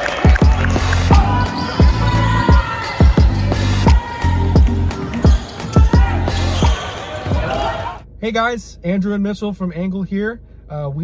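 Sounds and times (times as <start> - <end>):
arena crowd noise: 0.0 - 8.0.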